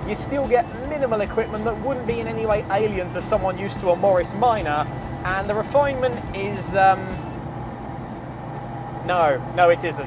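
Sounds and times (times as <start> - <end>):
car engine whine: 0.0 - 10.0
road and wind noise: 0.0 - 10.0.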